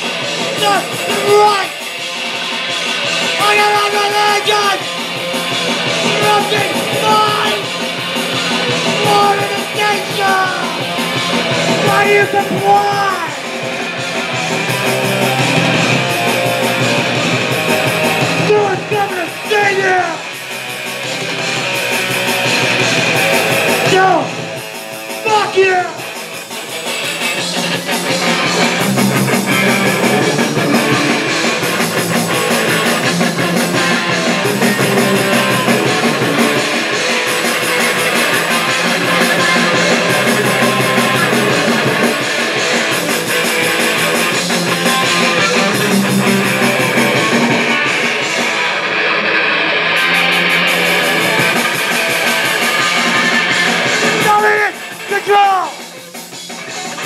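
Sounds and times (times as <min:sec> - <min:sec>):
distorted electric guitars: 0:00.0 - 0:57.0
punk rock band playing: 0:00.0 - 0:57.0.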